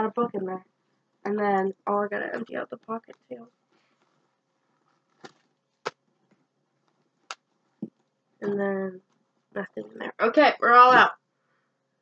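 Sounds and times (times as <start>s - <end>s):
faint clicks and taps: 2.4s - 9.5s.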